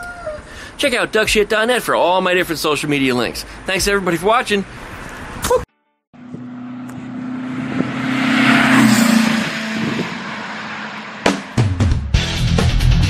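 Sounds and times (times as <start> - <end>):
vehicle passing by: 6.2 - 12.0.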